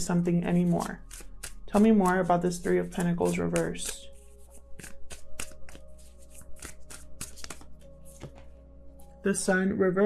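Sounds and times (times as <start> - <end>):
cards being shuffled: 0.0 - 8.5.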